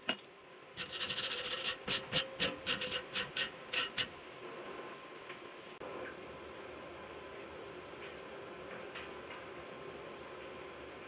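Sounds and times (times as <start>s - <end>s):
wire brush scrubbing metal: 0.8s - 4.1s.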